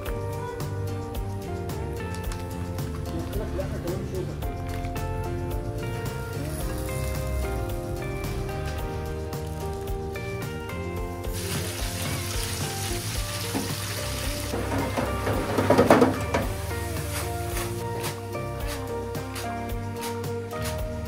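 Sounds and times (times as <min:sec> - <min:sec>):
background music: 0:00.0 - 0:21.0
potatoes sizzling in hot oil: 0:06.4 - 0:07.6, 0:11.3 - 0:19.0.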